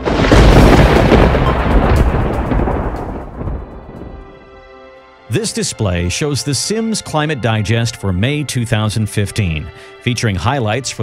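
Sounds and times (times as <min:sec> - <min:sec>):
deep rumbling sound effect: 0:00.0 - 0:04.5.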